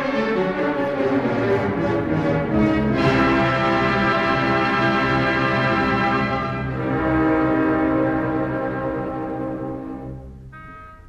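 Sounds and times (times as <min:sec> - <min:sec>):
orchestra sustained chord: 0:00.0 - 0:11.0.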